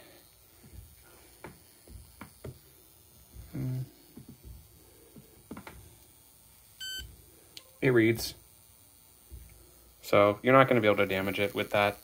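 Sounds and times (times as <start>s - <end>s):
man's voice murmuring: 3.4s - 4.0s.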